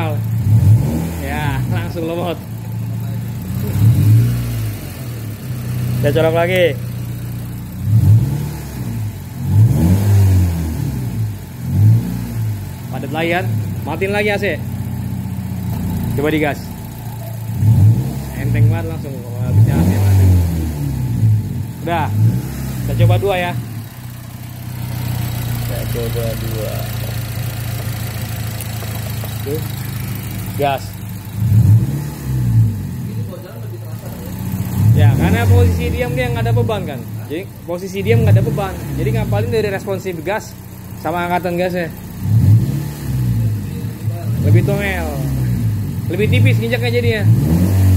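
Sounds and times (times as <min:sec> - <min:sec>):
car engine idling and revving: 0:00.0 - 0:47.9.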